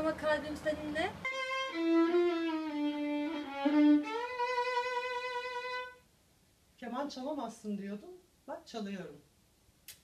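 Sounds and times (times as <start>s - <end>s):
bowed violin notes: 1.2s - 6.0s.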